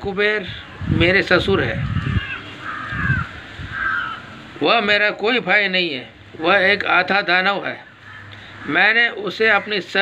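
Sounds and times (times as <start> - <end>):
crow cawing: 2.0 - 4.5, 7.8 - 10.0.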